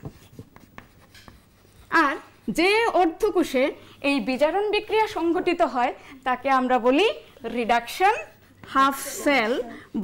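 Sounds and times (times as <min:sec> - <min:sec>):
chalk tapping and scratching: 0:00.0 - 0:03.4, 0:07.7 - 0:09.1.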